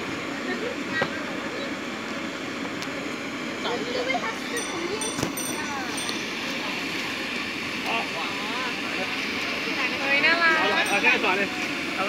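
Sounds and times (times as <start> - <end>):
cotton candy machine whirring: 0.0 - 12.0.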